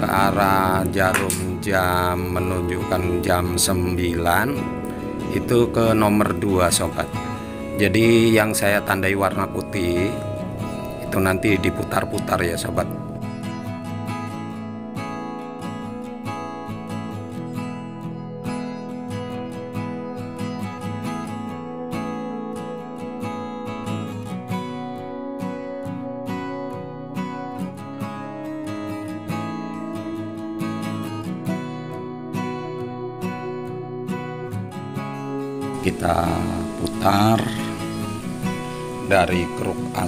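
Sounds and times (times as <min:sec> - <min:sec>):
acoustic guitar playing: 0:00.0 - 0:40.0.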